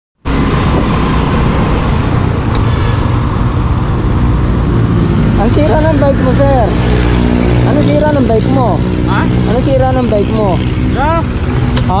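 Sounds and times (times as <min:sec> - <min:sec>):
motorcycle engine running: 0:00.2 - 0:12.0
road noise: 0:00.2 - 0:12.0.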